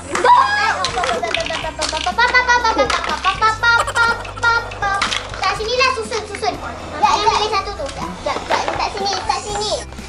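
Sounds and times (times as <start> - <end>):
young children chattering: 3.6 - 9.7.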